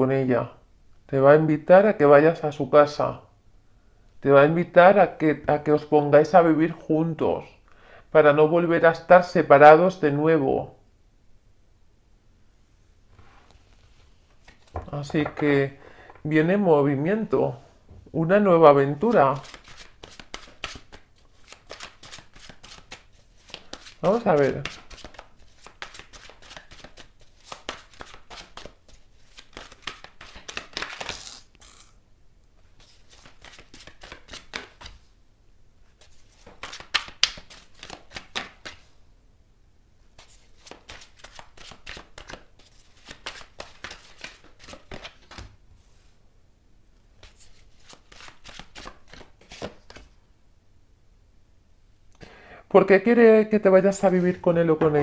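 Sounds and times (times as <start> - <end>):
cards being shuffled: 14.4 - 15.4, 19.0 - 32.0, 32.7 - 35.0, 36.0 - 38.9, 40.2 - 45.5, 47.2 - 50.1.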